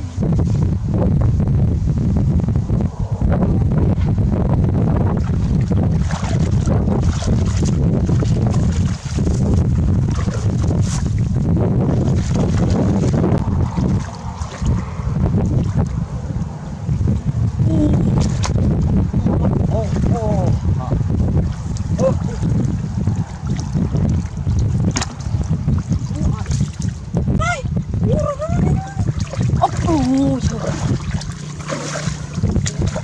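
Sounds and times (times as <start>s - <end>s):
wind buffeting microphone: 0.0s - 33.0s
faint splashing: 5.2s - 9.4s, 12.0s - 15.0s, 28.6s - 33.0s.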